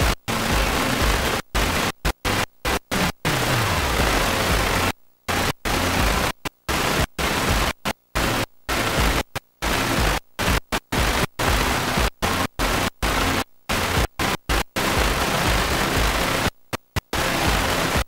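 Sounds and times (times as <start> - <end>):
videotape static hiss: 0.0 - 18.0.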